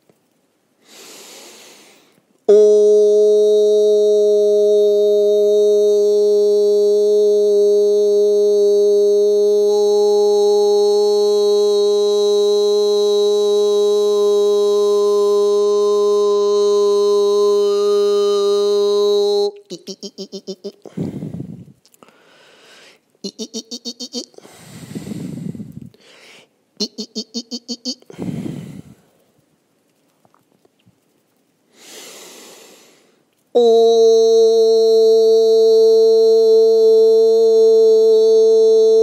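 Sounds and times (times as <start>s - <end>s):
in-breath: 0.8s - 2.2s, 20.8s - 23.1s, 24.4s - 26.6s, 28.1s - 29.4s, 31.7s - 33.2s
man holding a long vocal tone: 2.4s - 21.7s, 23.2s - 26.0s, 26.8s - 29.1s, 33.6s - 39.0s.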